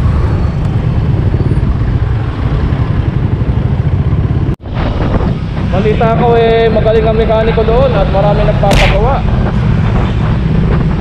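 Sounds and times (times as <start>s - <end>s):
wind rumbling on microphone: 0.0s - 7.4s, 8.4s - 11.0s.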